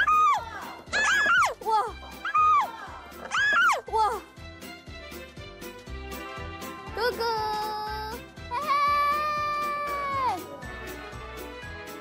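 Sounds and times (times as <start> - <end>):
background music with light beat: 0.0 - 12.0.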